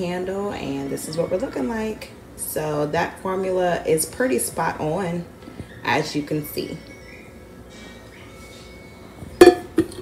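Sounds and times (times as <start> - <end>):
metal pitcher knocking on counter: 9.4 - 10.0.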